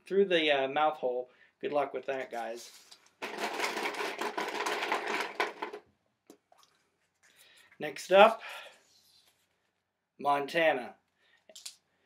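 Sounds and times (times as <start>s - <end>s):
paper slips rustling in a container: 2.1s - 5.8s.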